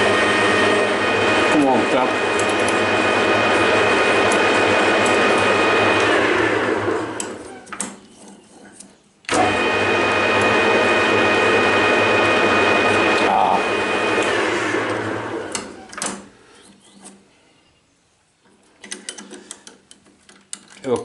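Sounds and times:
drill boring into metal shaft: 0:00.0 - 0:06.3, 0:09.3 - 0:15.8
metal lathe whining: 0:00.0 - 0:07.6, 0:09.3 - 0:16.0.

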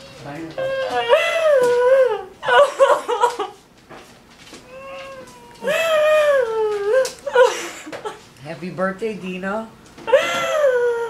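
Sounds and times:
woman wailing sobs: 0:00.6 - 0:03.2, 0:04.7 - 0:07.9, 0:10.1 - 0:11.0.

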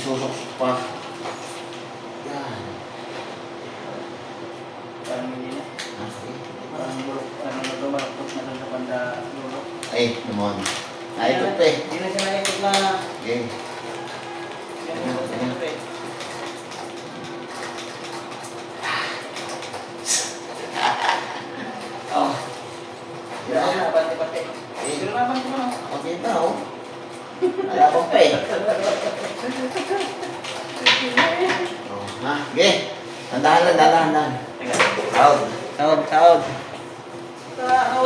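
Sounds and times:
steady hum: 0:00.0 - 0:38.0.

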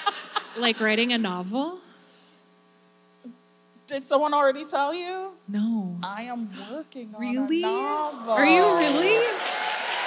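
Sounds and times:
electrical hum: 0:00.0 - 0:10.0
person speaking: 0:06.0 - 0:09.3.

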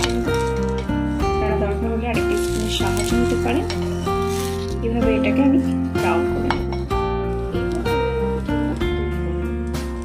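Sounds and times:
background music held notes: 0:00.0 - 0:10.0
metal utensils scraping a pan: 0:02.2 - 0:04.9.

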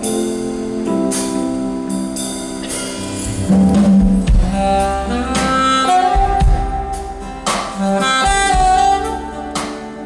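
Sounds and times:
jazz band playing slow ballad: 0:00.0 - 0:10.0
low drum thumps: 0:03.3 - 0:07.5.

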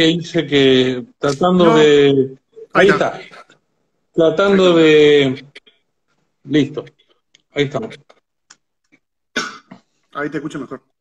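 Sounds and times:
man coughing: 0:09.3 - 0:09.8.

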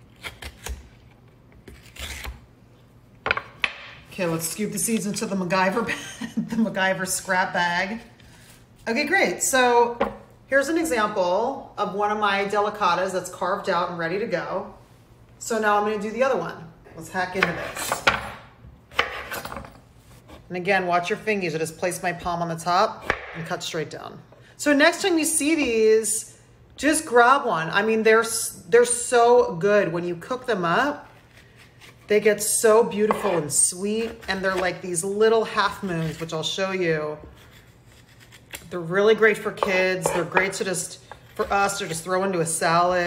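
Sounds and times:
spoon scraping squash: 0:31.0 - 0:42.6
knife chopping on wooden board: 0:33.1 - 0:33.4, 0:39.6 - 0:40.5.

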